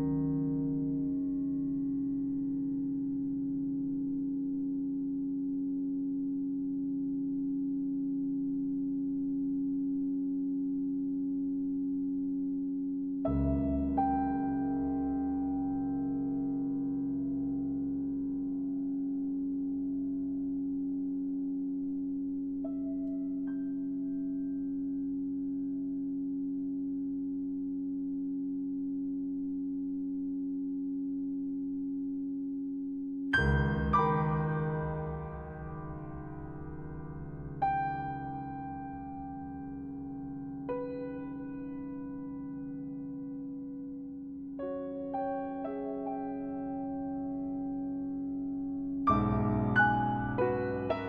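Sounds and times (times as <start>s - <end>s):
piano string drone: 13.2s - 26.7s, 33.3s - 51.0s.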